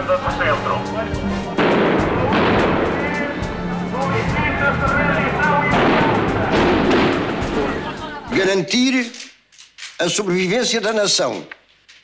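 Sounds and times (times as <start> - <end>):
music: 0.0 - 8.5
voices: 0.0 - 9.2
gunfire bursts: 1.5 - 8.1.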